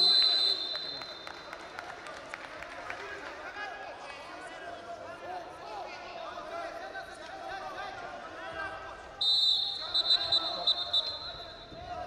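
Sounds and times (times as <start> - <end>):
referee's whistle blast: 0.0 - 1.5, 9.2 - 11.8.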